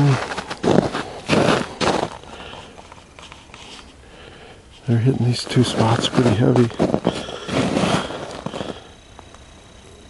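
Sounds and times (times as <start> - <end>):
footsteps crunching in snow: 0.0 - 4.0, 4.8 - 8.9.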